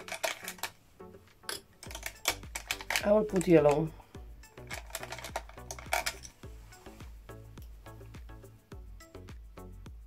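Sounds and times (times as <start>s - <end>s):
plastic palette being handled: 0.0s - 0.8s, 1.8s - 3.9s, 4.7s - 6.3s
makeup brushes clicking and tapping: 0.0s - 4.0s, 4.6s - 6.4s
background music: 0.0s - 10.0s.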